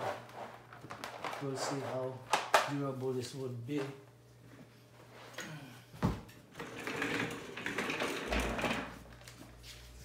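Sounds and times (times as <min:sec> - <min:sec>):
chair casters rolling on floor: 0:06.4 - 0:09.5.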